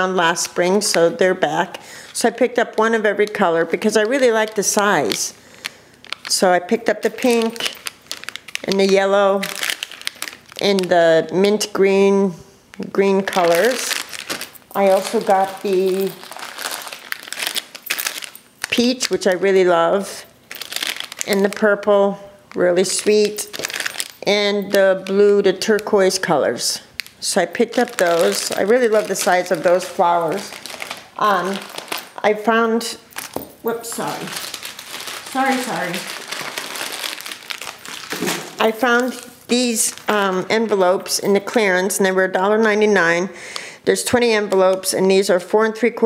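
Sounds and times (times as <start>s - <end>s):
plastic packets crinkling: 0.0s - 42.7s.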